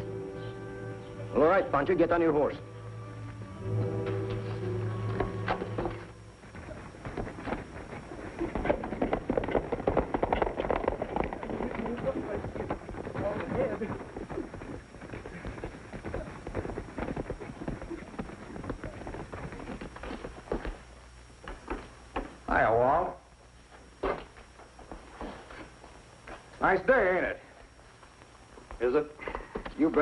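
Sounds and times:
horse hooves galloping on dirt: 0:04.1 - 0:22.4.

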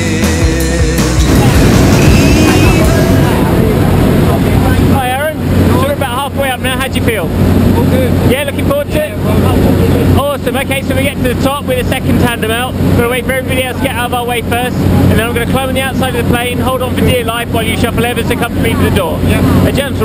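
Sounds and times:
aircraft engine and propeller drone: 0:01.1 - 0:20.0.

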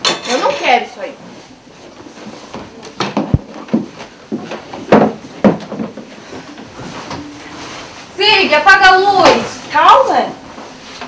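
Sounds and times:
knocks and bumps on wooden beds: 0:02.5 - 0:06.2.

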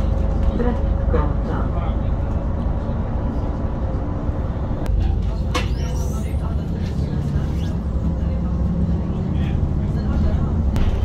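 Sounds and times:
bus engine drone: 0:00.0 - 0:11.0
road rumble: 0:00.0 - 0:11.0.

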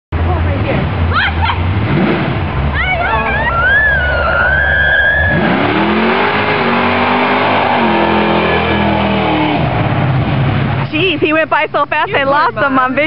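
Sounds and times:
car engine accelerating hard: 0:00.2 - 0:11.2.

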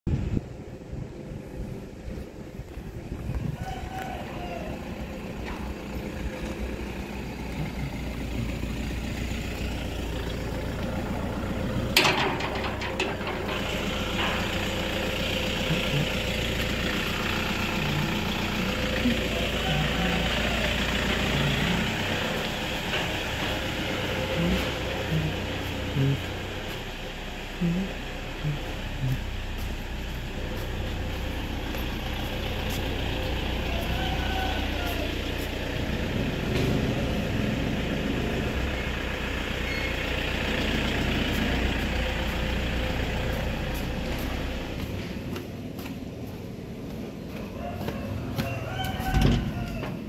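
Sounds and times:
street noise rumble: 0:00.1 - 0:50.0.

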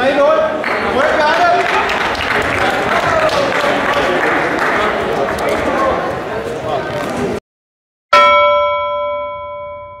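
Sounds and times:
metallic bell chime: 0:08.2 - 0:10.0.

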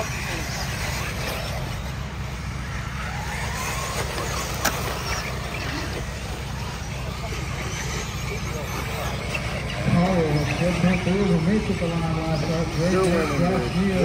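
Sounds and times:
electric motor whines: 0:00.0 - 0:14.0
voices chattering: 0:00.0 - 0:14.0.

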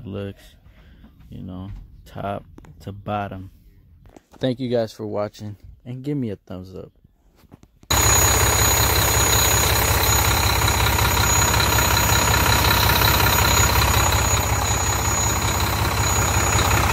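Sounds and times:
diesel truck engine idling: 0:07.9 - 0:16.9
thin high engine whine: 0:07.9 - 0:16.9.

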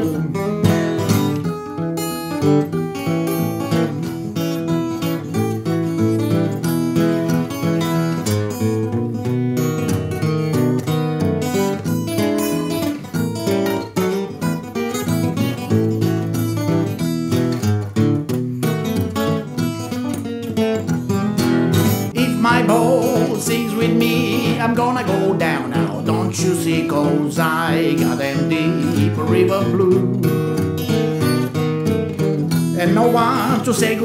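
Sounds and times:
fingerpicked acoustic guitar: 0:00.0 - 0:34.0.

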